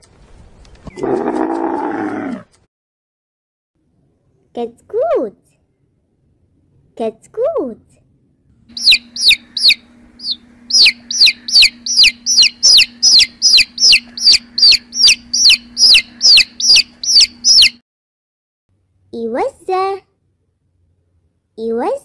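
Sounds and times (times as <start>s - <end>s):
faint low hum: 3.8s - 17.8s
baby chicks peeping: 8.7s - 17.8s.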